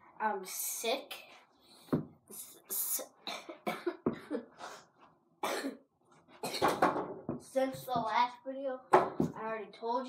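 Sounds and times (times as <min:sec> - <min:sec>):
boy coughing: 0:03.2 - 0:04.6, 0:05.4 - 0:06.8.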